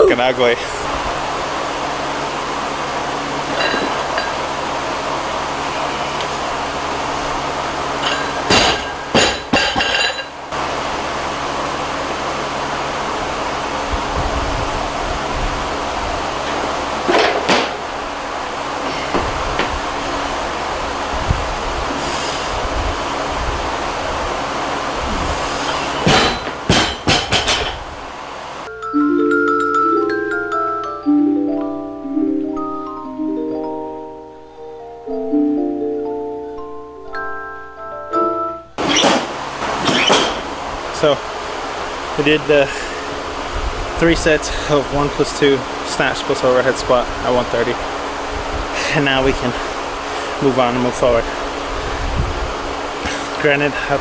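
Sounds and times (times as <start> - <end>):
barbell dropped on platform: 8.1 - 10.3, 26.0 - 27.8.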